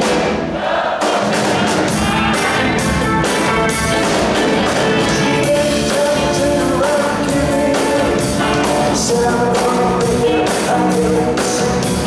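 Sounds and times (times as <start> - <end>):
drums: 0.0 - 12.0
electric guitars: 1.2 - 12.0.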